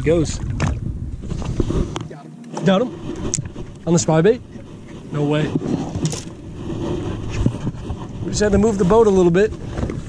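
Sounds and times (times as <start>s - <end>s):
water noise: 0.0s - 10.0s
wind: 0.0s - 10.0s.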